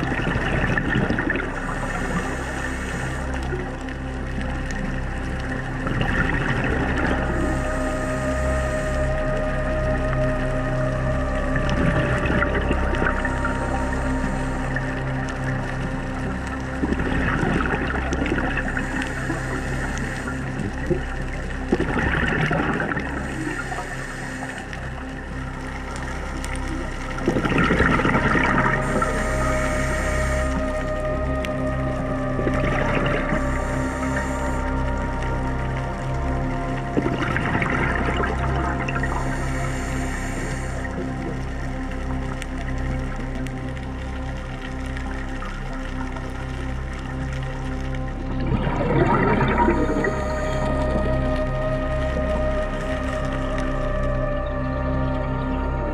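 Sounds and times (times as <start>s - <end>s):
background music with held tones: 0.0s - 55.9s
regulator bubbles underwater: 0.0s - 55.9s
steady low hum: 0.0s - 55.9s.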